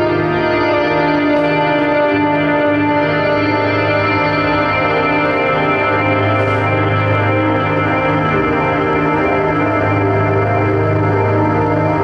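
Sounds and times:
electric guitar with echo: 0.0s - 12.0s
steady low drone: 0.0s - 12.0s.

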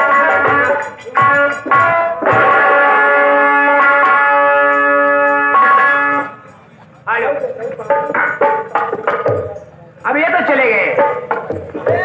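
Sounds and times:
person calling out over loudspeaker: 11.8s - 12.0s.

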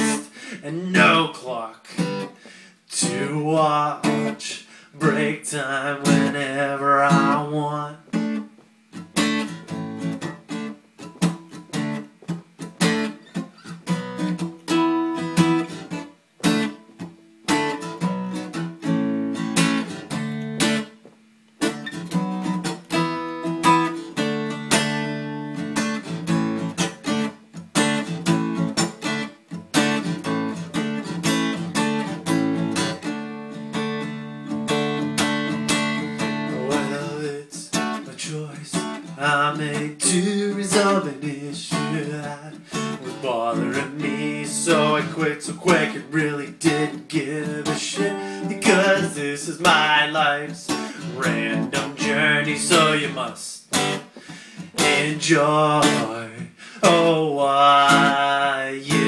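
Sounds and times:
acoustic guitar strummed and picked: 0.0s - 59.0s.

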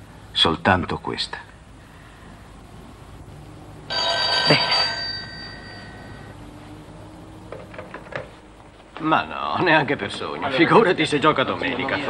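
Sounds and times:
telephone bell ringing: 3.9s - 6.4s.

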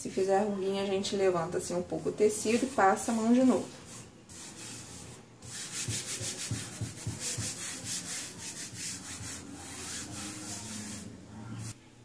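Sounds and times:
palms rubbing over fabric: 2.2s - 11.8s.

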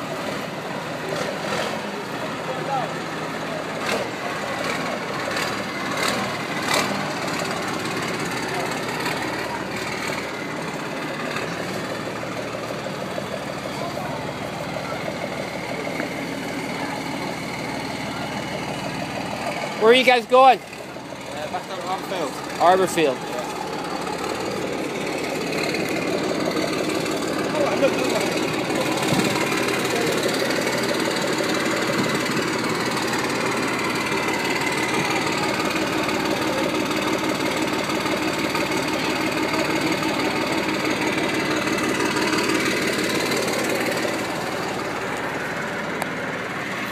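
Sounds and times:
military vehicle engines running: 0.0s - 46.9s.

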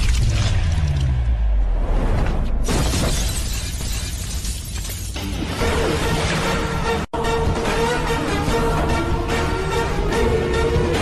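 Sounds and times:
glass breaking crash: 2.6s - 5.5s
film score music: 5.2s - 11.0s.

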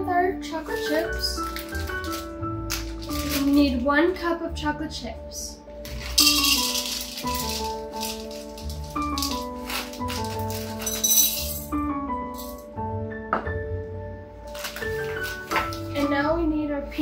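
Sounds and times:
background music: 0.0s - 17.0s
chocolate chips rattling into cup: 0.7s - 3.6s, 5.8s - 12.6s.

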